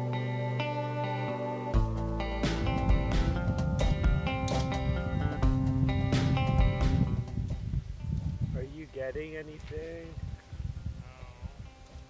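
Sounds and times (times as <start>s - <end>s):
soft background music: 0.0s - 12.0s
wind rumble on microphone: 2.9s - 12.0s.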